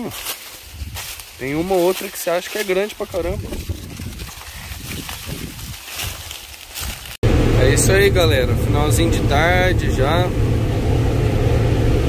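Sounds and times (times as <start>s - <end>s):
dry corn leaves rustling: 0.0s - 7.2s
low uneven rumble: 2.9s - 12.0s.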